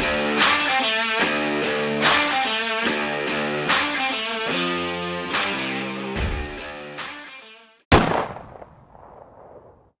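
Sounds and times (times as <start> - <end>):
guitar music: 0.0 - 7.7
loud reverberant bang: 7.9 - 9.2.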